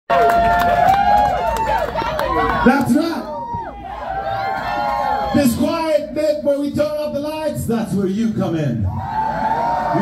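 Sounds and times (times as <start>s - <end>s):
concert crowd shouting and cheering: 0.1s - 6.5s, 8.4s - 10.0s.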